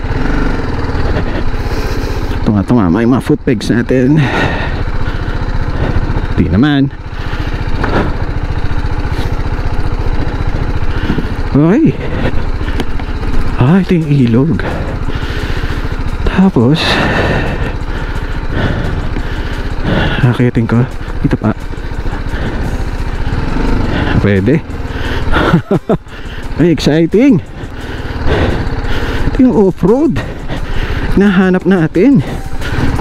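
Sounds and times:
motorcycle engine running steadily: 0:00.0 - 0:33.0.

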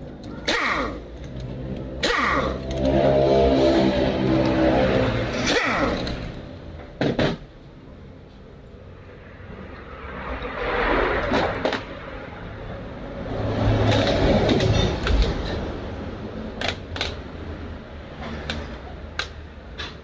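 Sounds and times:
motor vehicle passing: 0:00.0 - 0:06.8, 0:08.0 - 0:19.6.

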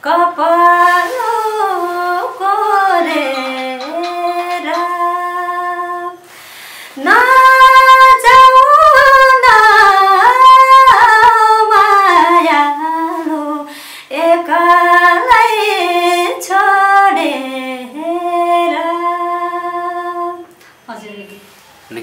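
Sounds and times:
woman singing unaccompanied: 0:00.0 - 0:06.3, 0:07.0 - 0:20.6.

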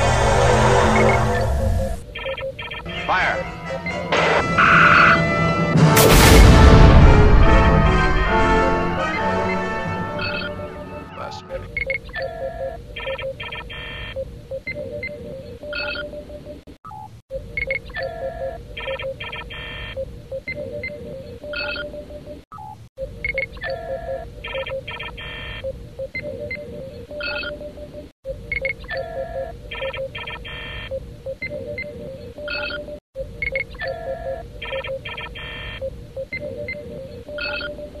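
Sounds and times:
electronic beeps and chirps: 0:00.9 - 0:05.2, 0:10.2 - 0:10.6, 0:11.2 - 0:38.0
orchestral music: 0:02.9 - 0:11.7.

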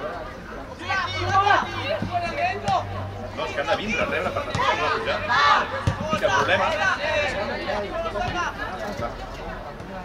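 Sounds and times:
shouting and chatter: 0:00.0 - 0:10.0.

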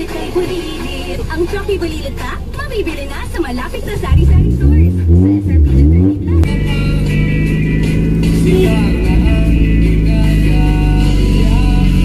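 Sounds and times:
background music: 0:00.0 - 0:12.0
car engine revving: 0:00.0 - 0:12.0.

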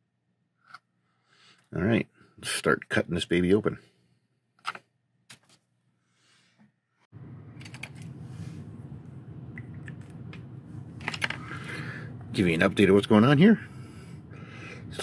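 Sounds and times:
low background hum: 0:06.8 - 0:15.0.

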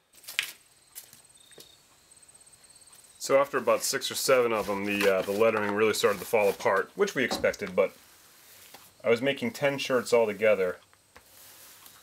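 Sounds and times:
high-pitched pulsing insect chirp: 0:00.5 - 0:04.6, 0:08.4 - 0:11.2.

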